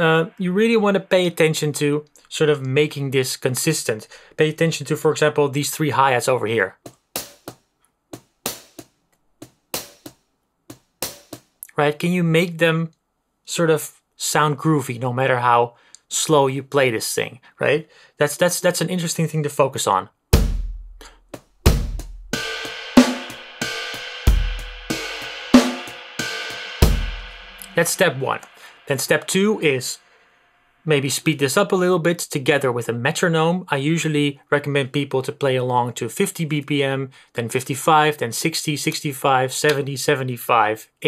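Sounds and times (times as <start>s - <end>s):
drum machine beat: 6.8s - 7.6s, 8.2s - 11.5s, 20.4s - 29.7s
hi-hat hits: 6.9s - 7.6s, 8.2s - 11.5s, 20.4s - 31.0s.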